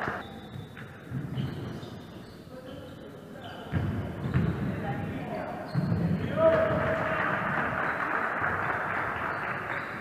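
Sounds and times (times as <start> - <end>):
voices echoing: 0.0 - 10.0.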